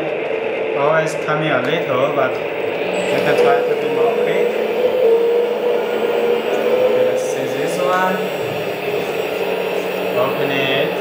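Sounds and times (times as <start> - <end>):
toy excavator mechanical hum: 2.2 - 11.0.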